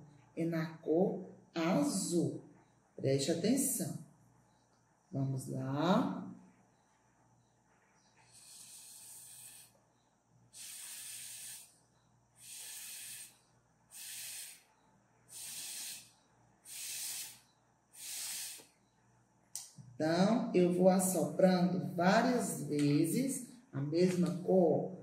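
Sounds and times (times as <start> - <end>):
breath puffs through straw: 8.3 - 9.7, 12.4 - 14.7, 15.3 - 16.1, 18.0 - 18.7.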